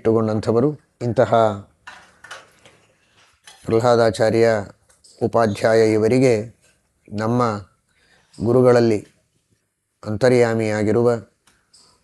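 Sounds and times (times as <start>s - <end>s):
man speaking: 0.0s - 1.7s, 3.6s - 7.7s, 8.4s - 9.1s, 10.0s - 11.3s.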